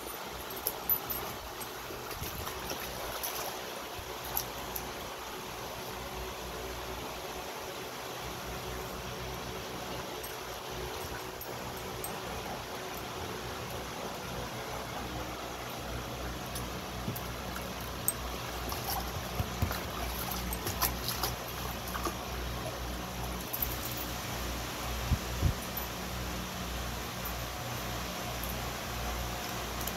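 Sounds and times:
fan humming: 0:00.0 - 0:29.9.

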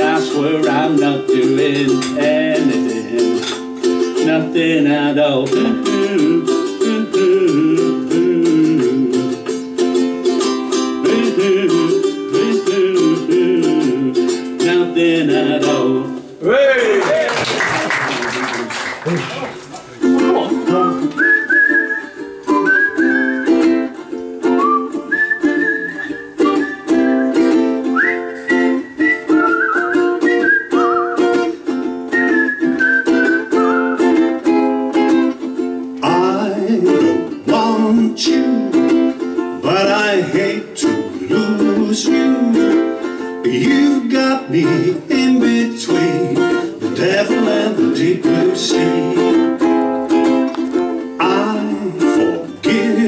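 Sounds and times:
ukulele strumming: 0:00.0 - 0:16.4, 0:19.1 - 0:53.0
applause: 0:16.8 - 0:19.8
whistled melody: 0:20.6 - 0:35.2.

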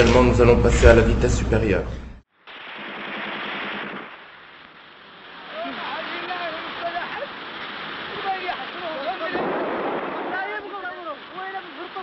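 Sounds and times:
rapid rattle of sharp bangs: 0:02.5 - 0:04.2
faint rushing noise: 0:04.2 - 0:12.0.

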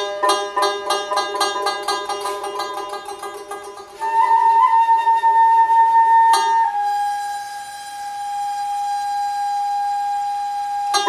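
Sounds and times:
plucked lute stroke: 0:00.0 - 0:04.7, 0:06.2 - 0:07.8
end-blown flute and bowed fiddle note: 0:04.0 - 0:11.0.

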